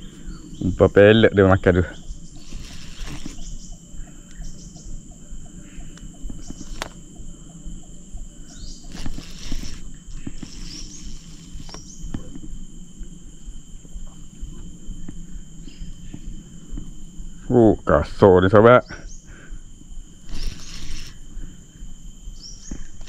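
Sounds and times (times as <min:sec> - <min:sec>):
insects droning: 0:00.0 - 0:23.0
fishing reel clicks and rustles: 0:02.4 - 0:04.4, 0:06.0 - 0:07.1, 0:08.5 - 0:12.2, 0:20.3 - 0:21.2.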